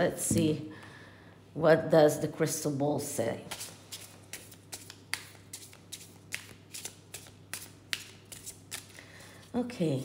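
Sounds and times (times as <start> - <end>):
cards being shuffled: 3.5 - 9.0.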